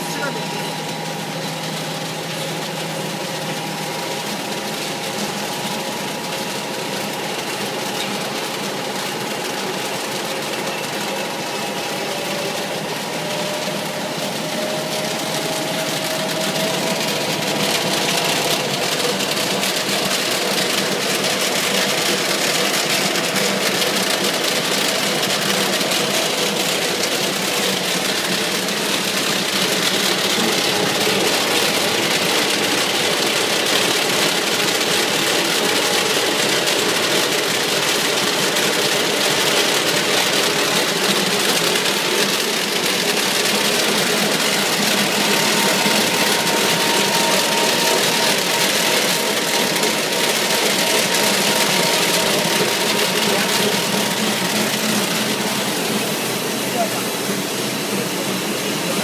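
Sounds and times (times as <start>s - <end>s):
paper bag machine whirring: 0.0s - 59.0s.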